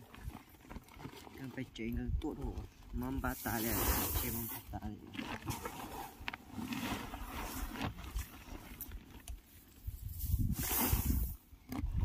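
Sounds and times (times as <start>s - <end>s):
rice grain pouring into a sack: 3.2s - 5.8s, 9.9s - 11.4s.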